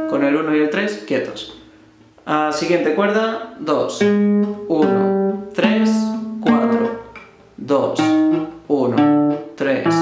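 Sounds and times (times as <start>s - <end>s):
nylon-string guitar plucked notes: 0.0s - 0.6s, 3.0s - 10.0s.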